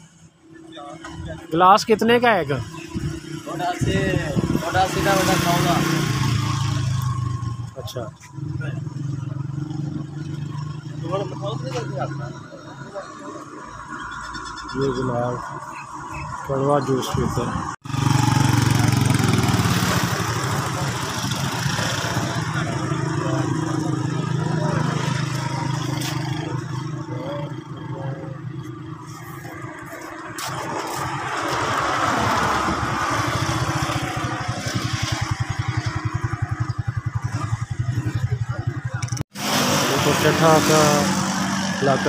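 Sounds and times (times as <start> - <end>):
vehicle noise: 0.0 - 42.0.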